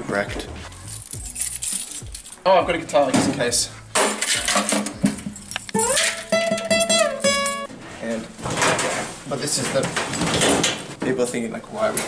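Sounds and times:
acoustic guitar strummed and plucked: 4.2s - 7.7s.

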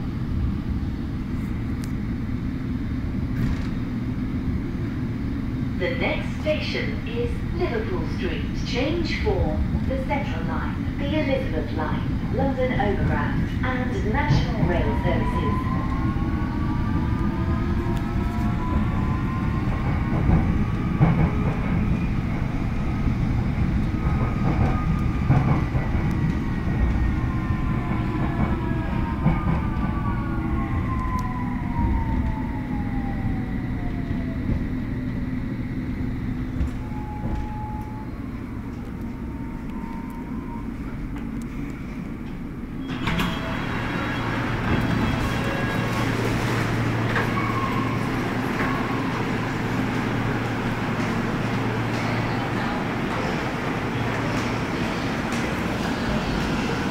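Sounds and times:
train rumble: 0.0s - 56.9s
train doors opening: 3.3s - 4.0s, 6.2s - 32.6s, 36.2s - 56.9s.

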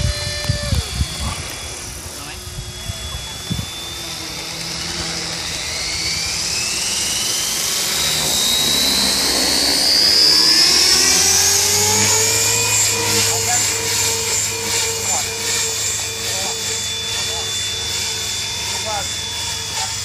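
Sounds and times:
rc helicopter motor whine: 0.0s - 20.0s.

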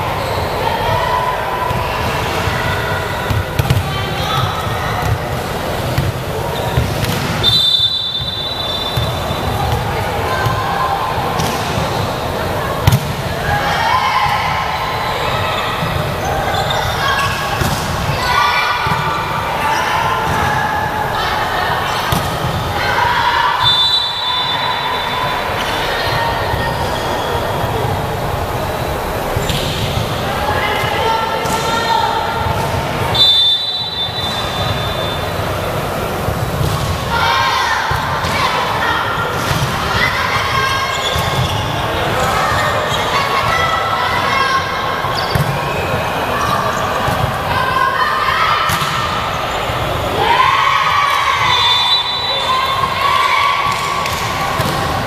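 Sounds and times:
players shouting: 0.0s - 55.0s
referee whistle blasts: 7.4s - 9.6s, 23.6s - 25.5s, 33.1s - 35.3s, 51.4s - 53.0s.

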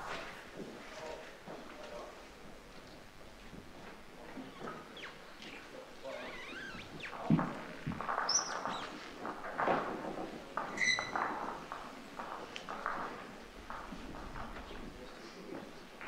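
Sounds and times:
short high squeaks: 6.0s - 7.3s, 8.2s - 9.0s, 10.7s - 11.2s.

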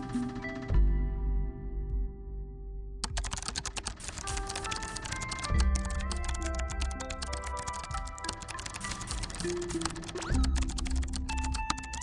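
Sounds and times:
light background music: 0.0s - 12.0s
rapid keyboard typing: 3.0s - 12.0s.

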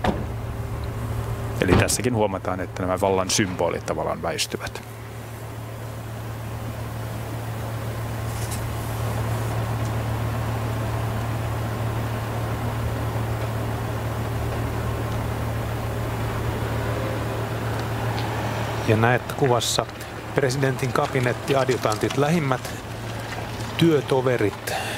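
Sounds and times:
car engine idling: 0.0s - 24.9s.

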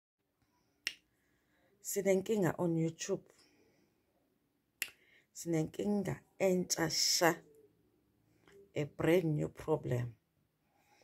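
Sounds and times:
woman speaking: 1.8s - 3.3s, 5.4s - 7.5s, 8.7s - 10.2s.

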